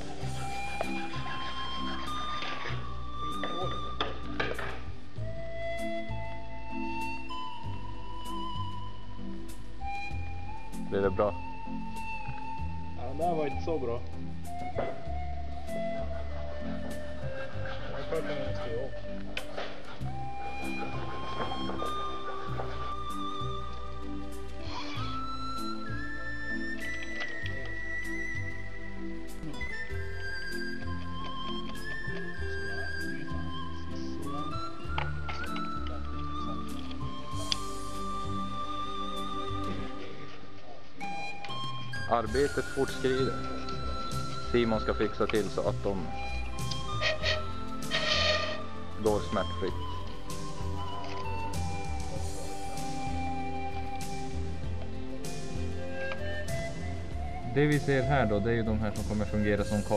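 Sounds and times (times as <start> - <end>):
pan flute breathy notes: 0.0 - 4.5, 5.2 - 59.9
background music: 0.0 - 59.9.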